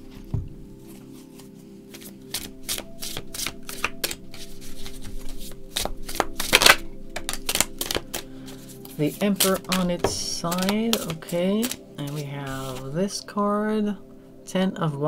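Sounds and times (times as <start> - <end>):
faint background music: 0.0 - 15.0
cards being shuffled: 0.9 - 13.0.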